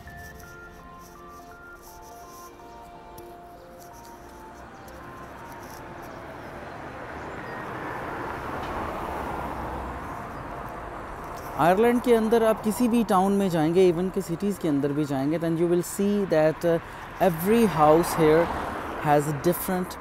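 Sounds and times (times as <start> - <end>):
background music of short notes: 0.0 - 7.6
car passing on street: 0.0 - 20.0.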